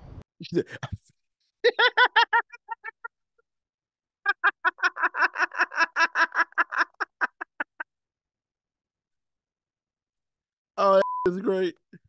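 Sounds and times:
man cackling with laughter: 1.6 - 3.1, 4.3 - 7.8.

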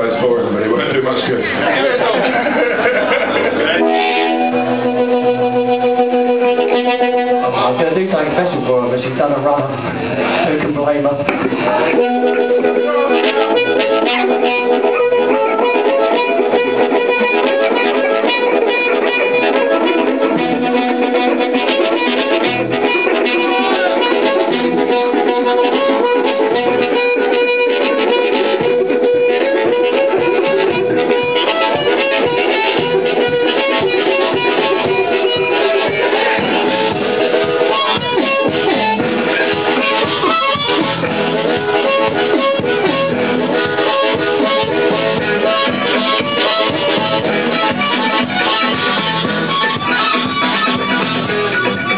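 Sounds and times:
live band playing: 0.0 - 51.9
harmonica: 0.8 - 7.8, 11.5 - 51.9.

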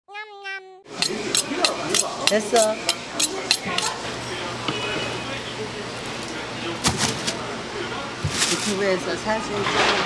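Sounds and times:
knife scraping on honing steel: 0.9 - 3.9
murmur of voices: 0.9 - 10.0.

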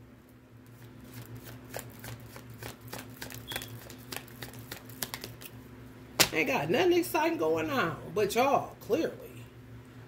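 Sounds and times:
low steady hum: 0.0 - 10.0
cards being shuffled: 0.6 - 5.6.

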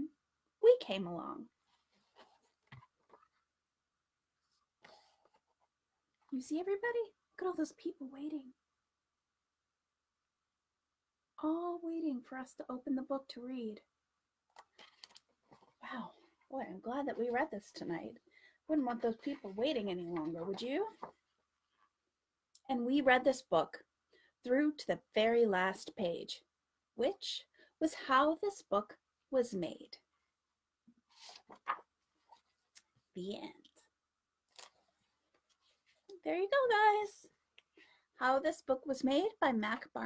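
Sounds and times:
paper pages rustling: 14.6 - 15.8, 18.9 - 21.4, 31.1 - 32.6.

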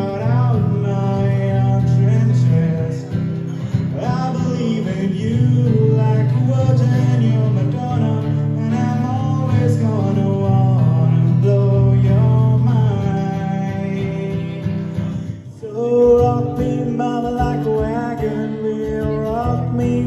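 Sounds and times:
man singing: 0.0 - 20.0
strummed acoustic guitar: 0.0 - 20.0.

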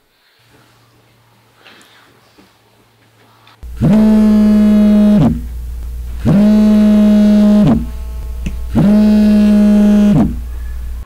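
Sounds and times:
mobile phone buzzing: 3.6 - 11.0
steady low hum: 3.6 - 11.0.

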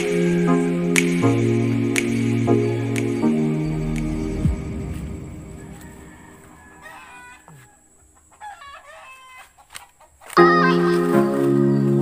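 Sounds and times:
background music: 0.0 - 7.2, 10.4 - 12.0
chicken calls: 0.0 - 10.6
rooster crowing: 4.8 - 9.5.

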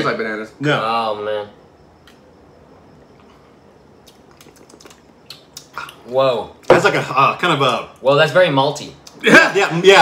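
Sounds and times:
sipping and swallowing: 4.0 - 6.0.

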